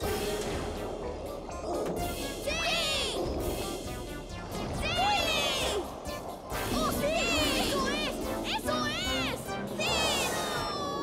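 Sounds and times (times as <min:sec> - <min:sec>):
background music: 0:00.0 - 0:11.0
cartoon children cheering and laughing: 0:02.3 - 0:03.2, 0:04.7 - 0:05.9, 0:06.6 - 0:11.0.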